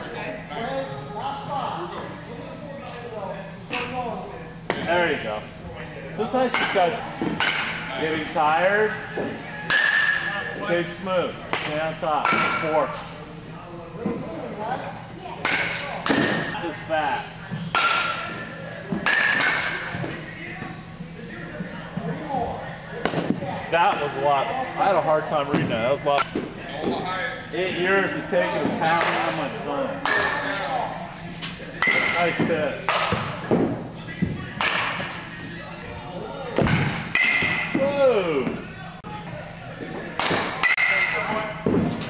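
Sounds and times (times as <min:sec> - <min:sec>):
baseballs striking gloves and netting: 0:06.5 - 0:08.0, 0:09.2 - 0:10.4, 0:11.5 - 0:12.9, 0:15.4 - 0:16.5, 0:17.7 - 0:20.2, 0:23.0 - 0:23.4, 0:28.6 - 0:30.7, 0:31.4 - 0:35.2, 0:36.6 - 0:38.6, 0:40.0 - 0:42.0.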